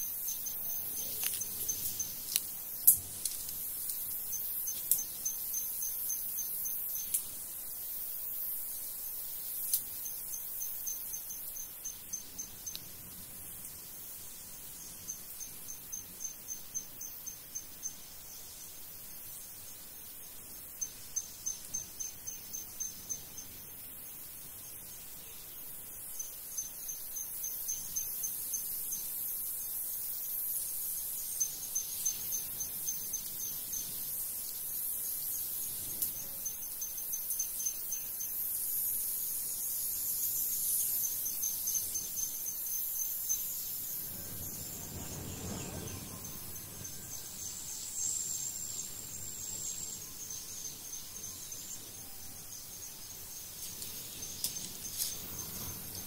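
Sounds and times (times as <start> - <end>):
high hiss of insects: 0.0 - 56.0
insect pulsed trill: 0.0 - 56.0.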